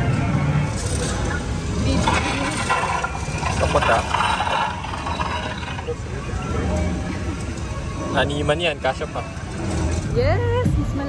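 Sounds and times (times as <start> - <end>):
ride car rumbling: 0.0 - 11.0
indistinct voices: 1.3 - 7.1.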